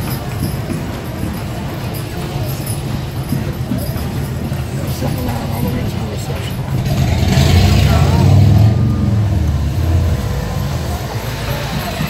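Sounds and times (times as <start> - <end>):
vehicle engine running: 4.4 - 12.0.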